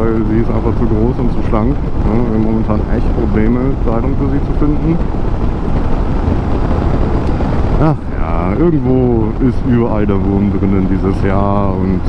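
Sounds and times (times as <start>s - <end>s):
motorcycle engine at road speed: 0.0s - 12.0s
wind rush over microphone: 0.0s - 12.0s.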